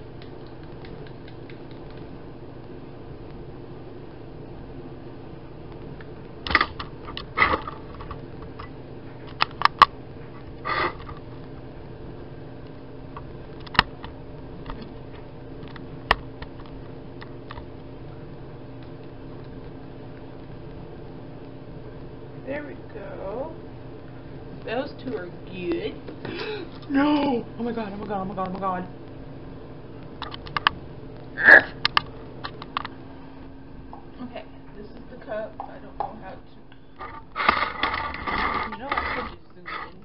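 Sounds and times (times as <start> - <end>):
low mechanical hum: 0.0 - 40.0
stir stick clicking in plastic cups: 0.2 - 2.1.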